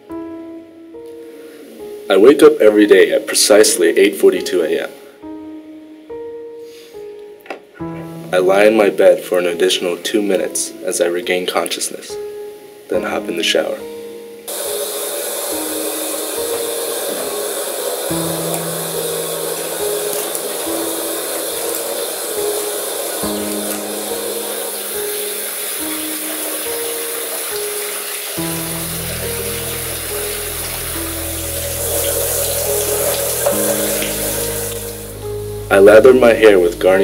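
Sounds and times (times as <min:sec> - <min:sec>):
slow background music: 0:00.0 - 0:37.0
shower water spraying: 0:14.5 - 0:36.2.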